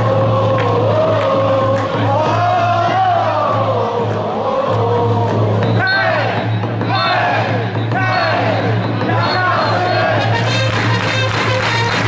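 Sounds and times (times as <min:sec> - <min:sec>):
stadium crowd singing: 0:00.0 - 0:10.5
loud music: 0:00.0 - 0:12.0.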